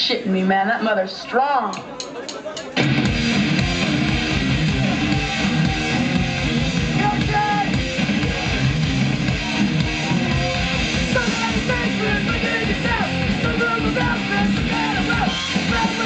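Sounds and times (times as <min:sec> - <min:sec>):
thrash metal band playing live: 0:02.8 - 0:16.0.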